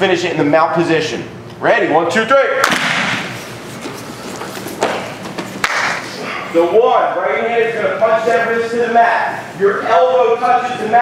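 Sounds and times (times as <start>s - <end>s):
bare feet shuffling on mats: 3.2s - 6.2s.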